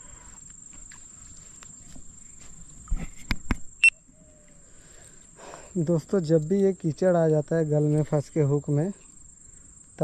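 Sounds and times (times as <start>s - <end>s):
crickets droning: 0.0s - 10.0s.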